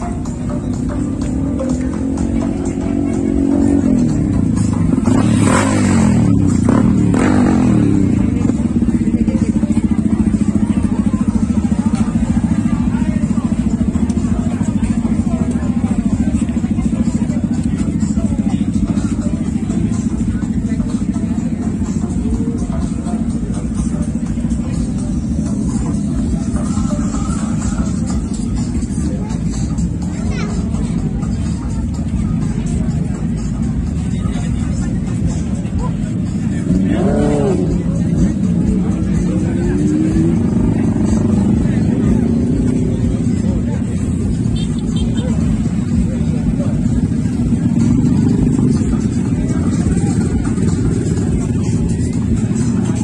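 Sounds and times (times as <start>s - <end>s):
background music: 0.0s - 44.2s
crowd chatter: 0.0s - 53.0s
motorcycle engine revving: 0.1s - 53.0s.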